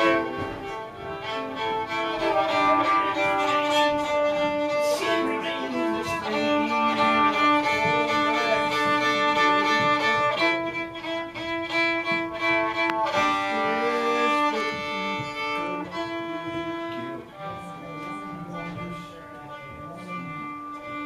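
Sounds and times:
fiddle bowing held notes: 0.0s - 21.0s.

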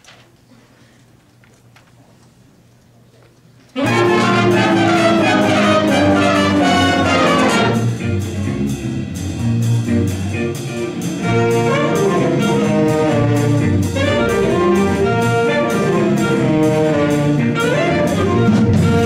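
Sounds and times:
trumpets: 3.8s - 8.1s, 11.2s - 19.0s
big band swing music: 3.8s - 19.0s
drums keeping a fast beat: 3.8s - 19.0s.

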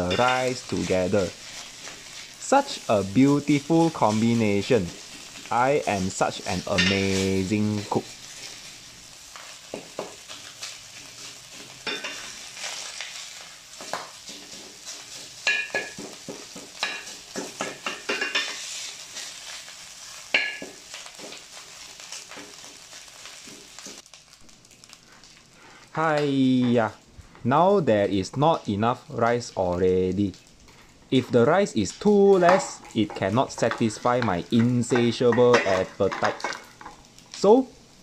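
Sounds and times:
rice sizzling in a pot: 0.0s - 38.0s.

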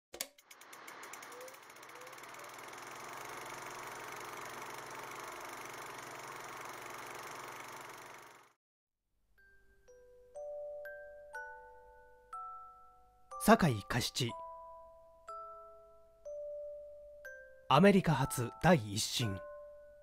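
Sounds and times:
film projector clattering: 0.2s - 8.6s.

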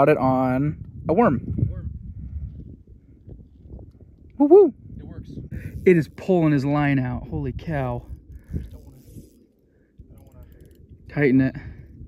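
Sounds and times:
fishing reel drag clicking: 5.6s - 6.3s, 8.0s - 11.0s.

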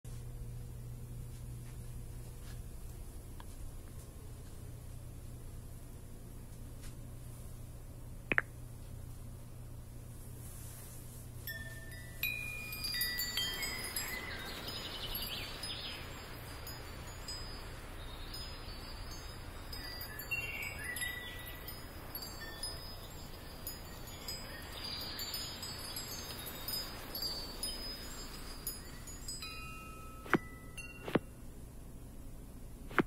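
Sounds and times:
high tinkling chime tones: 11.5s - 31.2s.

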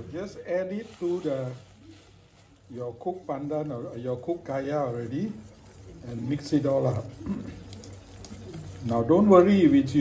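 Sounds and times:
wire whisk scraping metal pot: 3.0s - 10.0s.

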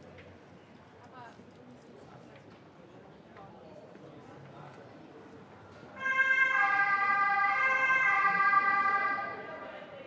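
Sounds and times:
two-tone emergency siren: 6.0s - 9.8s.

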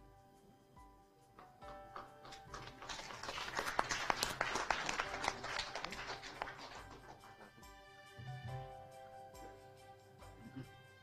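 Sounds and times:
quiet background music: 0.0s - 11.0s
audience applauding: 1.7s - 7.7s.

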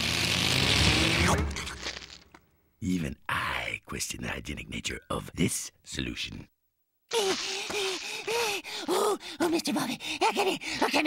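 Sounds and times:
breathy hiss: 7.1s - 9.4s.

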